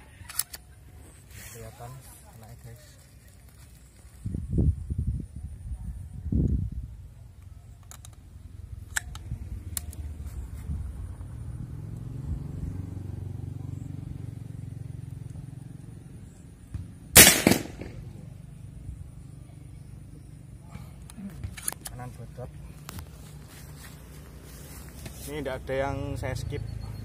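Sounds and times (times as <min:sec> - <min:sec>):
low rumbles: 0:16.6 - 0:22.9
air rifle shot: 0:17.1 - 0:18.3.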